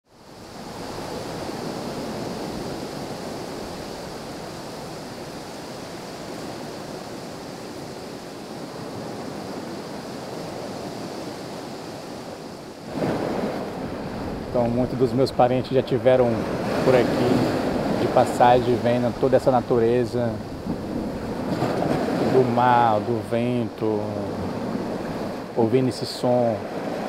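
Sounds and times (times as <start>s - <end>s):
wind: 0.0s - 27.0s
sea waves: 0.1s - 27.0s.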